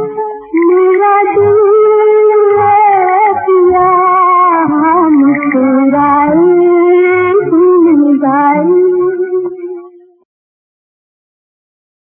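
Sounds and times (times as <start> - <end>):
woman singing a long note: 0.0 - 9.9.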